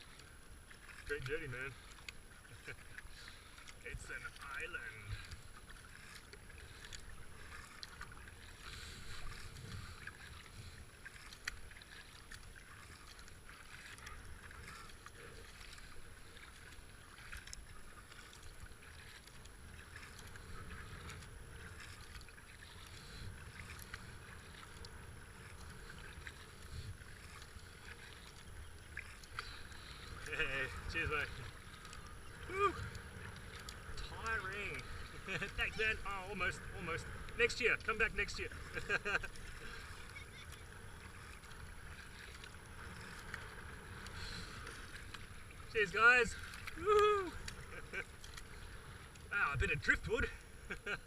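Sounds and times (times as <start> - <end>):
paddle splashing water: 0.0 - 51.0.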